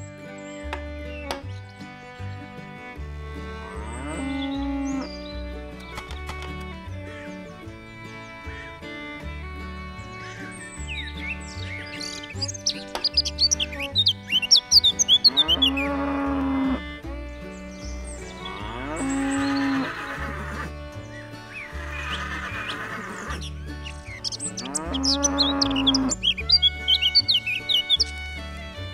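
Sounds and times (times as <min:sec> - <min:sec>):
background music with bass line: 0:00.0 - 0:28.9
birds chirping: 0:00.0 - 0:28.9
cow mooing: 0:03.4 - 0:05.2, 0:15.0 - 0:17.0, 0:18.2 - 0:20.8, 0:21.7 - 0:23.4, 0:24.4 - 0:26.5.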